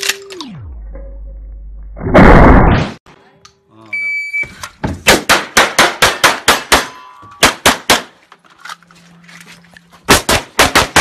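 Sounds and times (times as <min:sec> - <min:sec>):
pistol shots: 0:05.1 - 0:08.1, 0:10.1 - 0:11.0.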